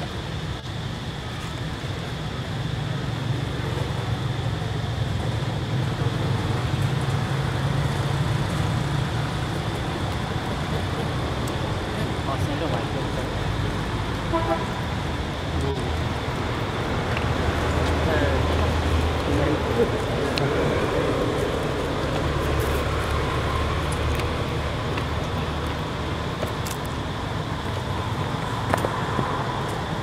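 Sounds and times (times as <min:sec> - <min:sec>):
motor vehicle rumble: 0:00.0 - 0:30.0
horn toot: 0:14.3 - 0:14.8
faint voices: 0:17.8 - 0:23.0.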